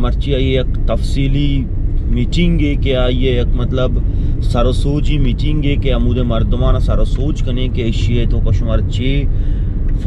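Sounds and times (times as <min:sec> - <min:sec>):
man talking: 0:00.0 - 0:09.3
car road and engine rumble: 0:00.0 - 0:10.0.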